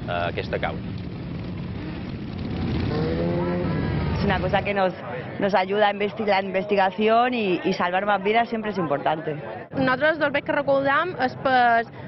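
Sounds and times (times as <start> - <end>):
motorcycle engines droning: 0.0 - 8.1.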